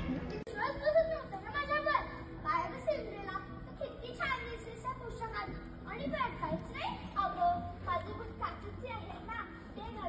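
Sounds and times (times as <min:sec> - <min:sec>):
children speaking: 0:00.0 - 0:10.0.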